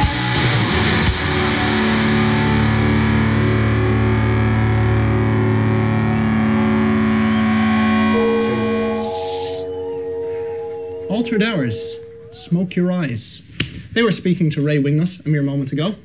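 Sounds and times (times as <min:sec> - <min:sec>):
distorted electric guitar chords: 0:00.0 - 0:12.5
steady high tone: 0:03.8 - 0:13.2.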